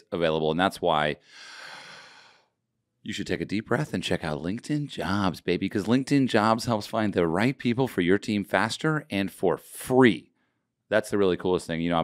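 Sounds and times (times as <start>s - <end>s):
man sighing: 1.2s - 2.5s.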